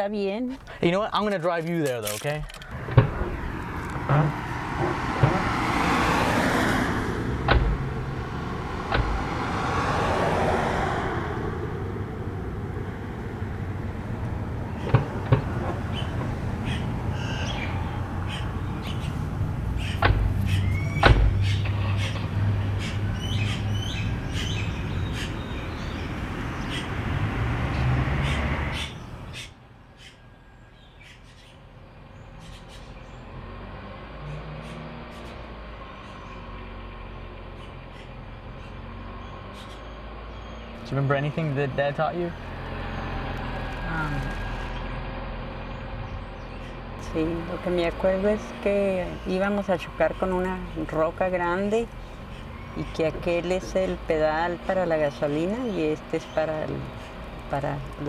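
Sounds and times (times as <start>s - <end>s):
birds chirping: 0.0s - 58.0s
car doors shutting: 1.7s - 10.7s, 14.3s - 16.4s, 19.8s - 23.0s
car engine pulling away: 1.7s - 29.3s, 31.9s - 58.0s.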